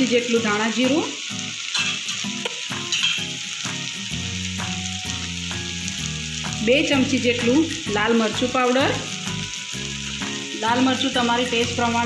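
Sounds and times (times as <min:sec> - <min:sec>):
food sizzling in oil: 0:00.0 - 0:12.0.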